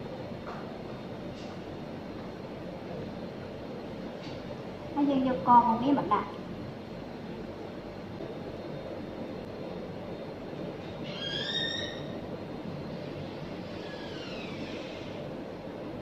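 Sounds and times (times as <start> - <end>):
low background noise: 0.0 - 16.0.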